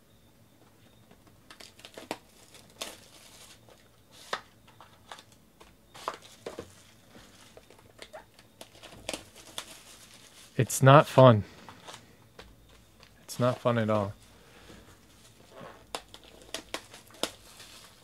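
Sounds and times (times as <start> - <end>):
plastic shrink wrap crinkling: 1.5 - 10.6, 15.0 - 18.0.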